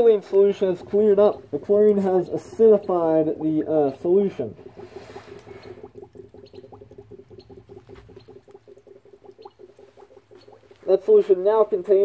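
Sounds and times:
gas bubbling in liquid: 0.0 - 12.0.

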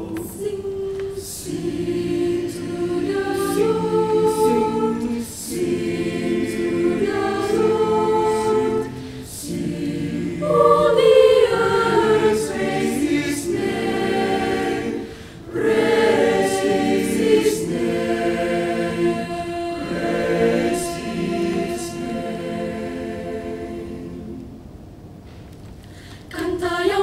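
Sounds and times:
choir singing: 0.0 - 24.8, 26.3 - 27.0
singers breathing: 8.9 - 9.4, 15.0 - 15.5, 25.2 - 26.4.

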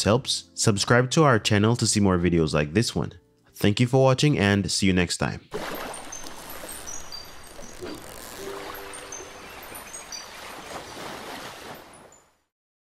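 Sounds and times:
surf washing: 5.6 - 12.2
short high chirps: 5.9 - 10.4.

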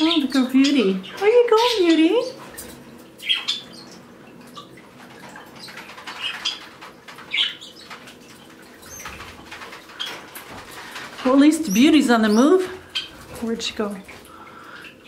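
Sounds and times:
small birds chirping: 0.0 - 15.0
wings fluttering: 1.6 - 15.0.

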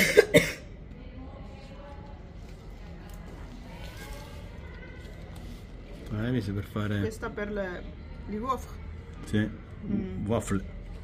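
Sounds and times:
person coughing: 0.0 - 0.7.

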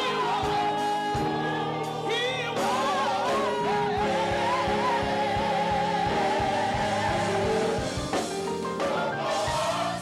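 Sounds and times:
gospel choir singing: 0.0 - 10.0
lead vocalists singing: 0.0 - 10.0.

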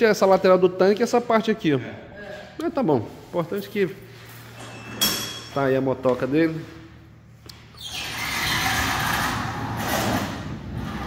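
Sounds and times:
sliding door rolling along track: 8.0 - 11.0.

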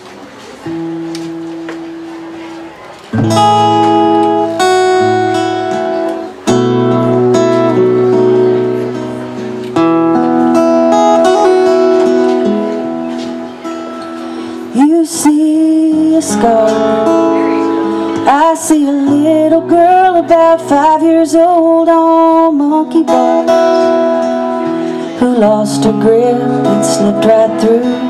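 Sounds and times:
acoustic guitars strumming chords: 0.2 - 28.0.

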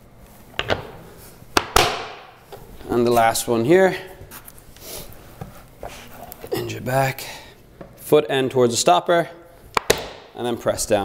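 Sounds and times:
rustling and shuffling: 2.4 - 6.5.

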